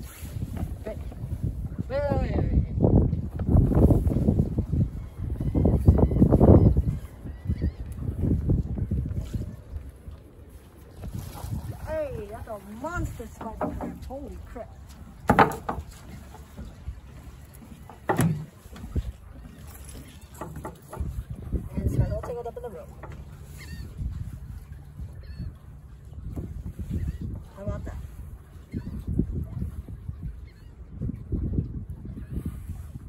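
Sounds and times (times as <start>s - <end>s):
wind gusting on microphone: 0.0s - 33.0s
crab trap knocking on wooden deck: 15.3s - 15.8s.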